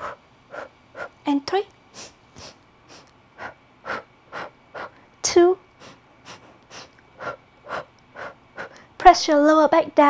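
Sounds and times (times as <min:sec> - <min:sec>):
woman's short rhythmic breaths: 0:00.0 - 0:01.2, 0:02.0 - 0:09.0.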